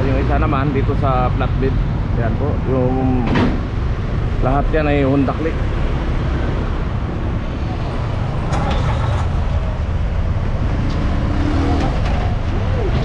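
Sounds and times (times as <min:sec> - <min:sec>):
vehicle engine and road rumble: 0:00.0 - 0:13.0.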